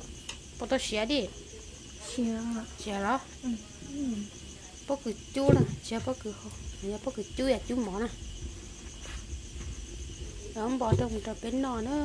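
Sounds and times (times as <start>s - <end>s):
insects trilling: 0.0s - 12.0s
people talking: 0.6s - 8.2s, 10.2s - 12.0s.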